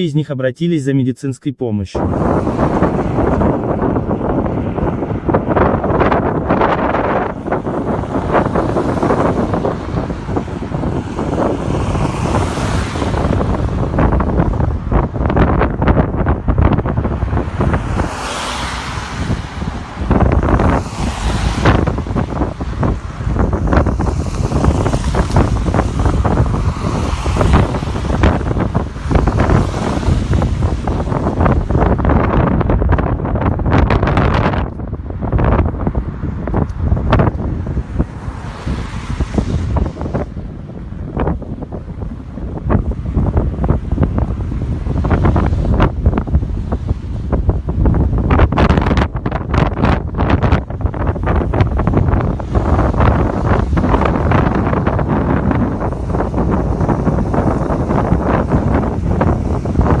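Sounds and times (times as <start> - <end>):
wind buffeting microphone: 1.9 - 60.0.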